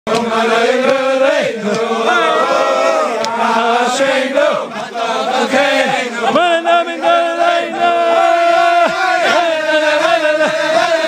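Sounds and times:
men singing in unison: 0.1 - 11.0.

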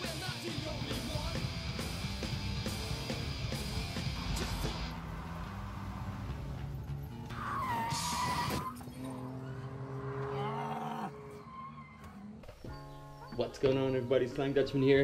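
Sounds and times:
music: 0.0 - 8.6
car engine and driving noise: 0.0 - 13.5
tyre squeal: 7.2 - 9.7.

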